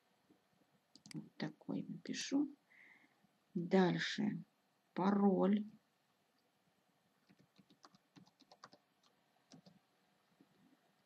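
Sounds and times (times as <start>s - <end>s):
typing on computer keyboard: 7.2s - 9.8s.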